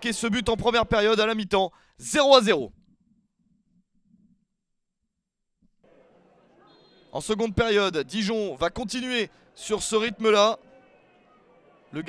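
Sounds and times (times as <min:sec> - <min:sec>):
faint stadium ambience: 0:00.0 - 0:02.7, 0:05.8 - 0:12.0.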